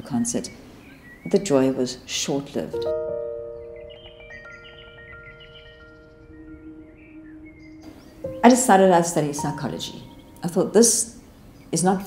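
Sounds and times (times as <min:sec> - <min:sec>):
low held chord: 0:02.8 - 0:10.8
bell-like high notes: 0:03.3 - 0:10.6.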